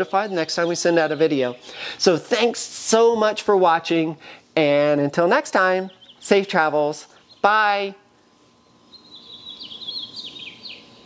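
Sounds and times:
small bird chirping: 5.8 - 6.4, 7.1 - 7.6, 8.6 - 11.0.

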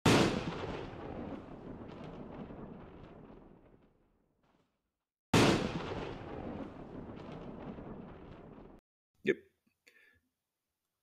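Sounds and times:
loud boom with rumbling tail: 0.0 - 4.2, 5.4 - 8.8.

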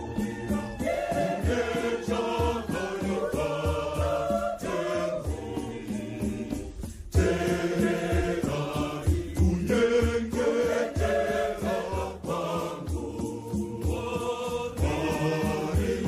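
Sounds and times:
crowd singing a hymn in harmony: 0.0 - 16.0.

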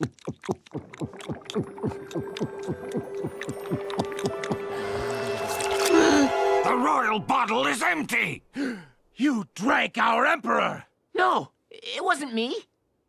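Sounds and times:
cartoon gulping swallows: 0.0 - 6.1
music: 1.7 - 7.3.

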